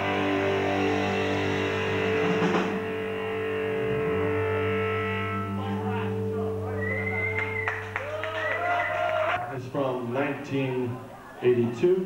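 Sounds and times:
electric guitars droning: 0.0s - 9.7s.

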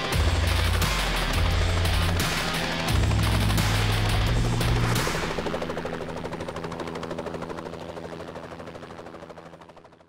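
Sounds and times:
helicopter rotor chopping: 0.0s - 10.0s.

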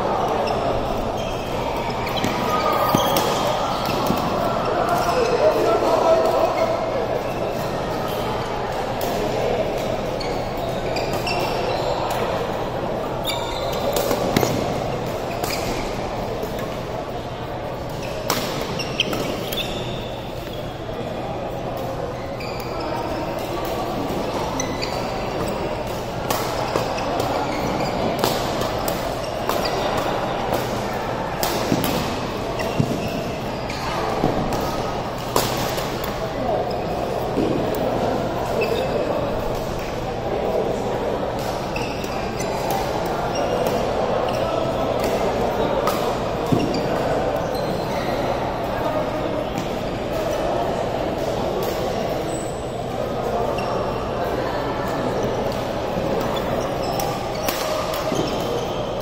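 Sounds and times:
chatter of many voices: 0.0s - 59.0s.

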